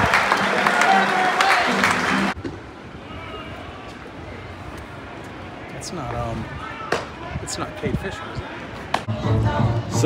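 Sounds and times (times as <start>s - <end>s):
ballpark crowd hubbub: 0.0s - 10.0s.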